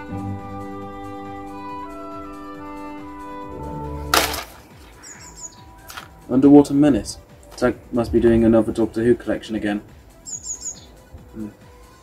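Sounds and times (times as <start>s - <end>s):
plastic case swishing: 4.1s - 5.0s
faint bird chirps: 4.9s - 5.9s, 10.2s - 11.1s.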